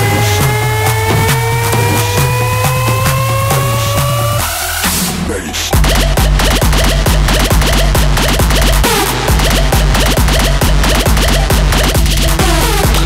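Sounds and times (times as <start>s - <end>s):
electronic dance music: 0.0s - 13.0s
heavy bass kick beat: 0.0s - 13.0s
record scratching: 0.0s - 13.0s.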